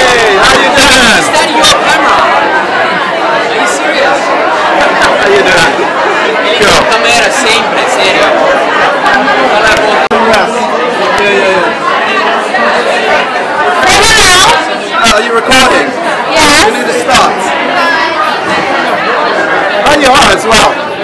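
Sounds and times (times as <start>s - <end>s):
crowd chatter indoors: 0.0s - 21.0s.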